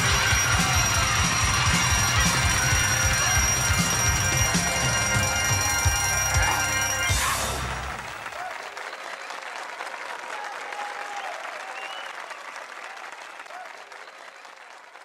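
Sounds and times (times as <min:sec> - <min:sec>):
voices calling out: 0:00.0 - 0:08.8
audience applauding and cheering: 0:00.0 - 0:15.0.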